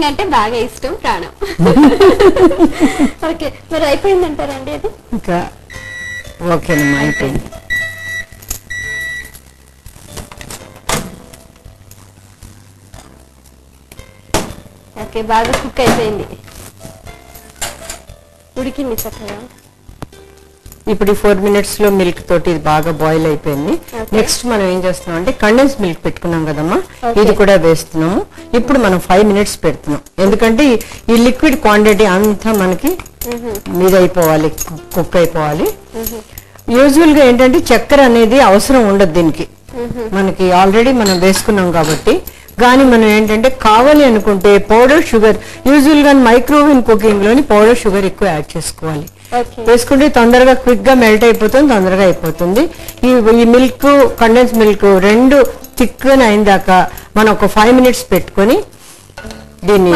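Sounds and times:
microwave beep: 5.7s - 9.4s
person talking: 28.6s - 58.7s.

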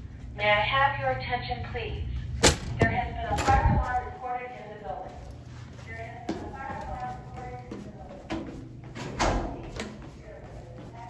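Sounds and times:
recorded woman's evacuation message: 0.4s - 8.3s.

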